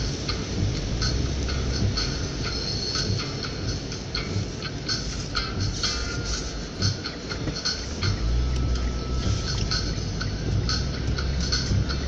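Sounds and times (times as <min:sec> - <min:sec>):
tyre and engine rumble: 0:00.0 - 0:12.0.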